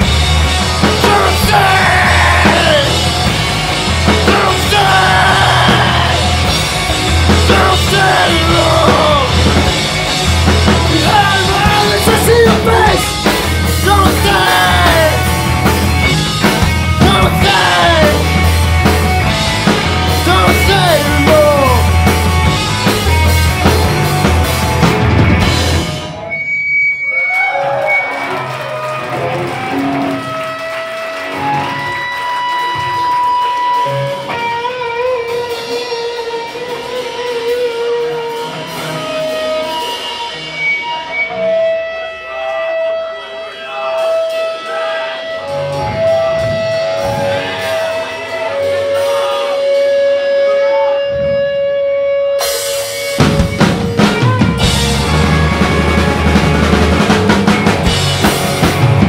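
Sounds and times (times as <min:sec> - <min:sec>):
low bass line: 0:00.0 - 0:26.3, 0:45.3 - 0:52.4, 0:53.2 - 0:59.0
drums: 0:00.0 - 0:59.0
electric guitars ringing: 0:00.0 - 0:59.0.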